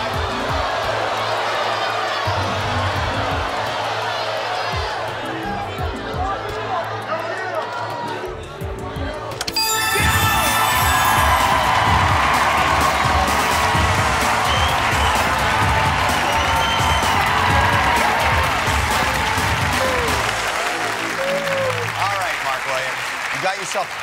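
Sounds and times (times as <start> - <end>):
audience applauding and cheering: 0.0 - 8.3, 9.5 - 24.0
game-show music with steady beat: 8.4 - 21.1
crowd whoops: 9.6 - 22.2.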